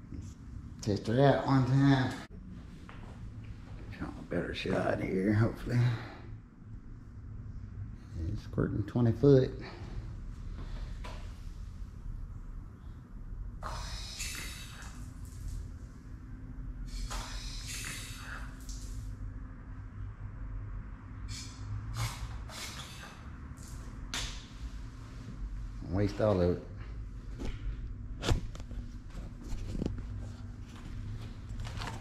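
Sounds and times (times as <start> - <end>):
low steady hum: 0.0 - 32.0
hissing spray bursts: 16.9 - 18.5.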